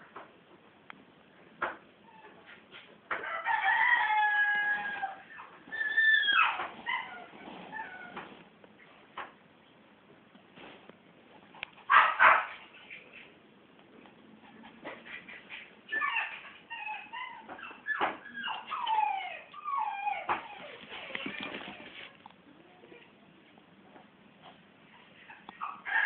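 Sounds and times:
puppy whining: 2.0 - 2.6, 4.0 - 8.4, 14.4 - 23.1, 24.8 - 26.0.

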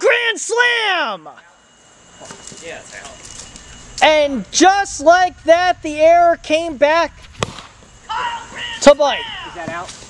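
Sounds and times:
person shouting: 8.1 - 9.7.

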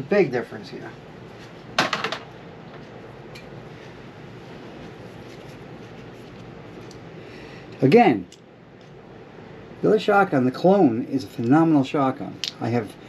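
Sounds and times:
steady low hiss: 0.0 - 13.0.

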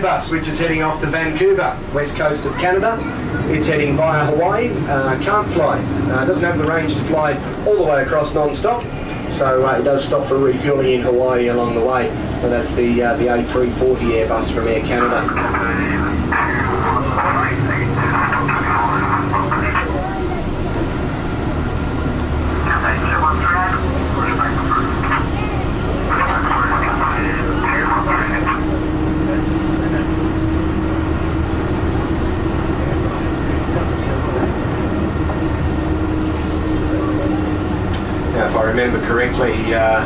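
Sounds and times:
bus engine drone: 0.0 - 40.0
indistinct talk: 0.0 - 40.0.

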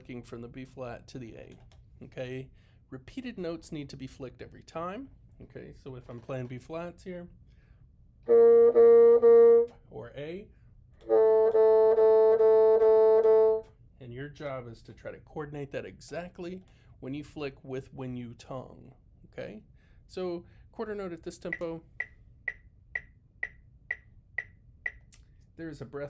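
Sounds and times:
bassoon repeating one note: 11.0 - 13.7
metronome clicking: 21.5 - 25.2.

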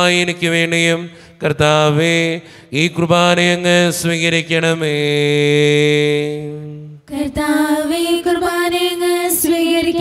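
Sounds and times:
man chanting a prayer: 0.0 - 7.0.

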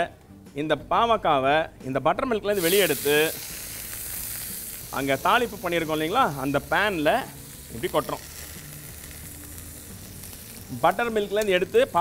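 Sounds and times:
vegetables sizzling in oil: 2.5 - 12.0.

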